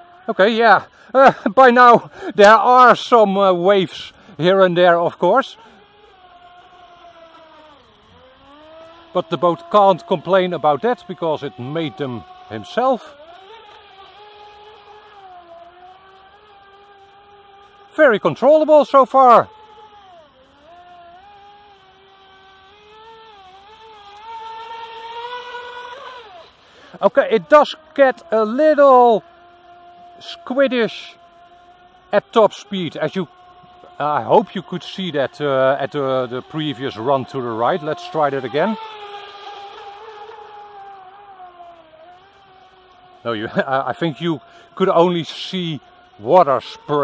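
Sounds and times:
distant electric motor whining: 0.0 - 47.0.

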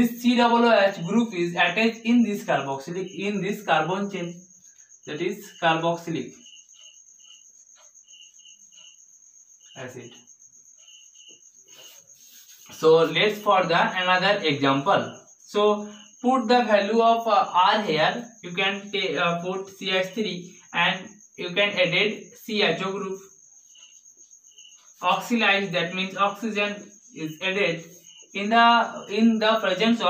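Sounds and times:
cricket chirping: 0.0 - 30.0
high-pitched insect trill: 0.0 - 30.0
man speaking: 5.1 - 6.4, 9.8 - 10.2, 12.7 - 23.2, 25.0 - 30.0.

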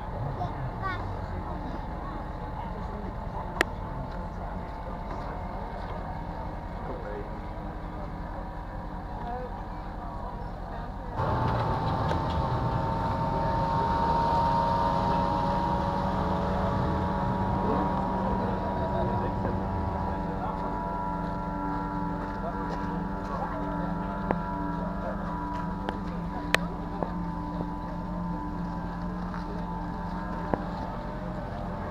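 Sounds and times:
powerboat engines high revs: 11.2 - 31.9.

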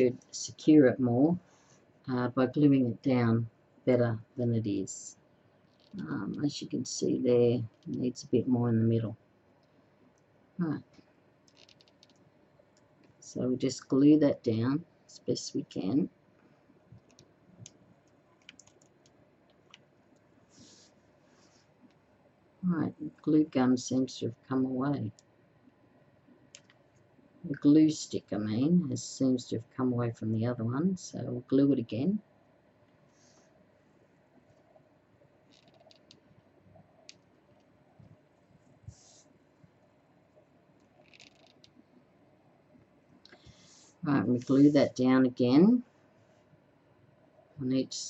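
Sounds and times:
faint clicks: 10.9 - 13.2, 16.4 - 20.3, 26.4 - 27.1
soft rustle: 16.3 - 22.2, 32.7 - 42.1, 43.1 - 45.1.

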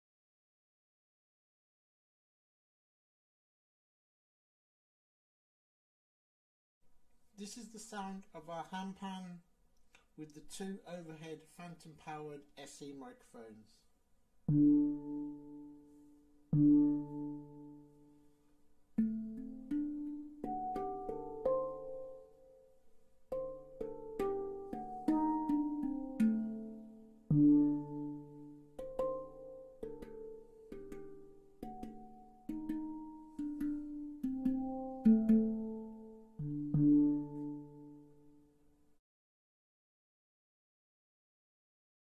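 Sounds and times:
handpan slow melody: 14.5 - 38.6.

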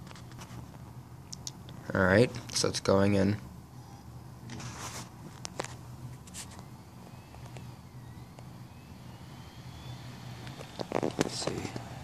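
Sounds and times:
faint rising whine: 0.0 - 12.0
low machine hum: 0.0 - 12.0.

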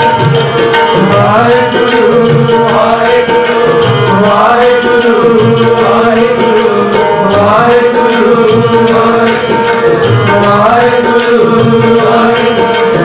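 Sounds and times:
harmonium melody: 0.0 - 13.0
tabla rhythm: 0.0 - 13.0.

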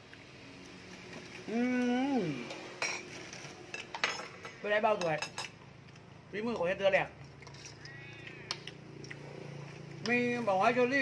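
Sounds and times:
metal spoons clinking on plates: 2.8 - 5.6.

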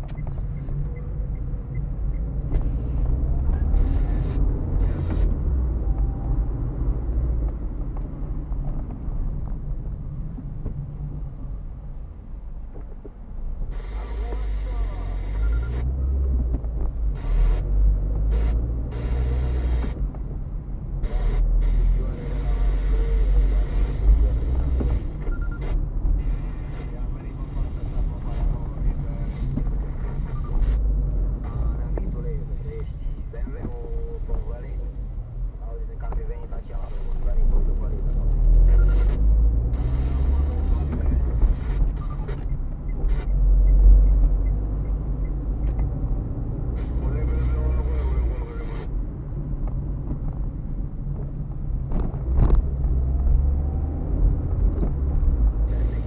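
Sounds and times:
engine and tyre rumble: 0.0 - 56.0.

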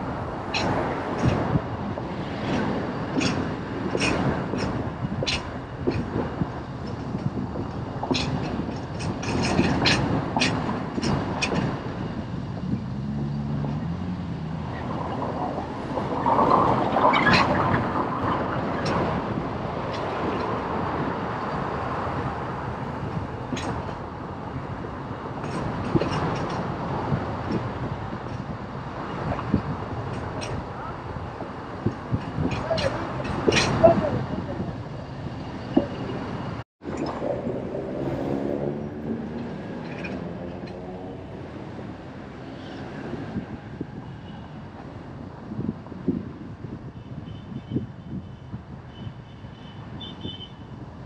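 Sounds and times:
vehicle road noise: 0.0 - 51.0.

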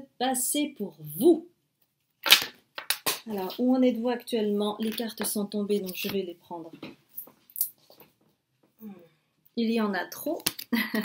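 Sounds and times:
card snap: 2.2 - 3.2.

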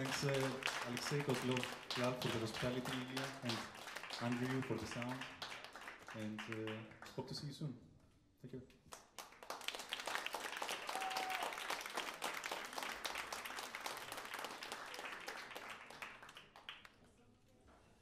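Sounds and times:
small audience clapping: 0.0 - 7.5, 8.8 - 17.2.

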